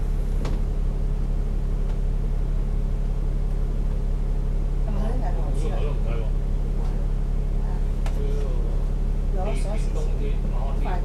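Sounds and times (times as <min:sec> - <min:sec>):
diesel bus engine idling: 0:00.0 - 0:11.0.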